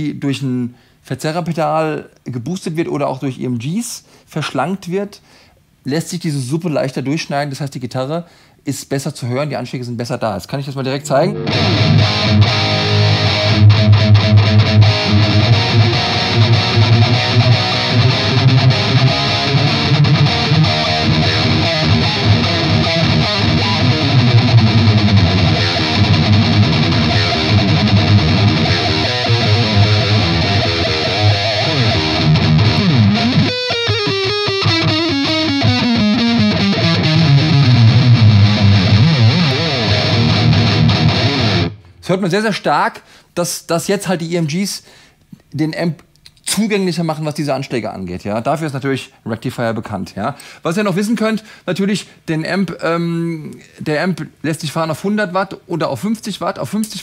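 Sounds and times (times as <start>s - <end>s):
distorted electric guitar riffing: 11.2s - 42.0s
guitar slide falling in pitch: 11.3s - 41.8s.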